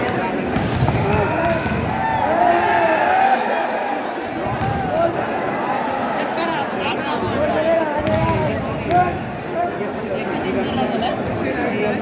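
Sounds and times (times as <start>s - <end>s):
volleyball hits: 0.0s - 2.2s, 4.3s - 5.3s, 7.2s - 9.2s
crowd shouting: 0.0s - 9.6s.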